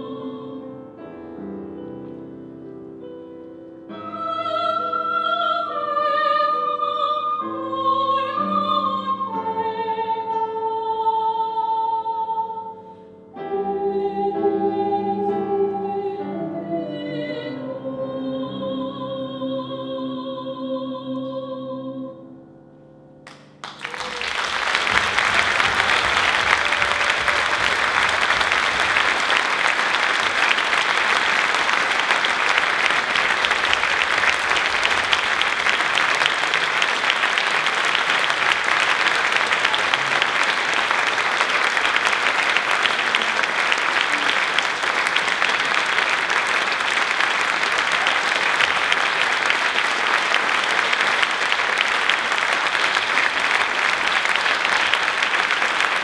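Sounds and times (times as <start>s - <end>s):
audience applauding: 23.3s - 56.0s.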